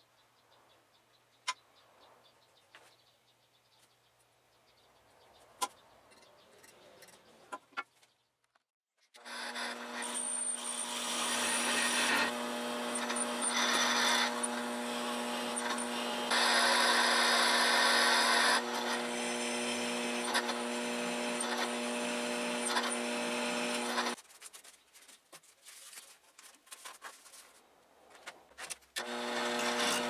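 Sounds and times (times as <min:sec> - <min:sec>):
electric drill boring into metal: 0:09.2 - 0:24.2, 0:29.0 - 0:30.0.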